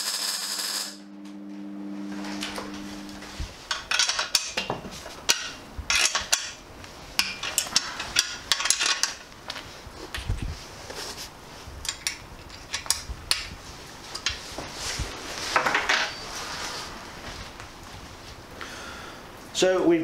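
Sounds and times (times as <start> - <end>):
welding arc crackling and hissing: 0.0 - 1.0
welder electrical hum: 0.0 - 20.0.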